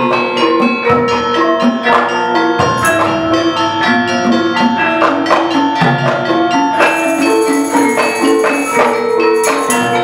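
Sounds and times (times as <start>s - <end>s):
gamelan ensemble playing: 0.0s - 10.0s.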